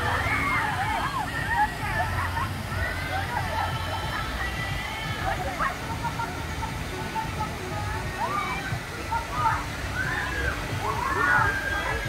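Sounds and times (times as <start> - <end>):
people's voices: 0.0 - 12.0
water rushing and sloshing: 0.0 - 12.0.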